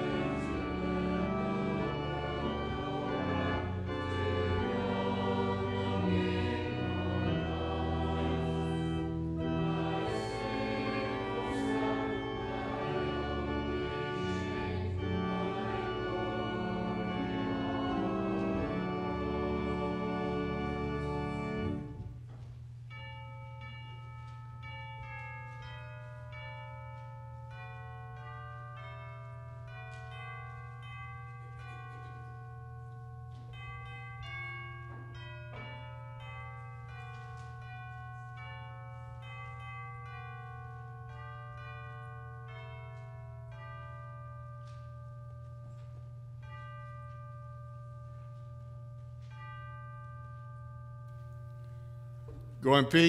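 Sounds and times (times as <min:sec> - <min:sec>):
bell-like chimes melody: 0:22.7 - 0:53.0.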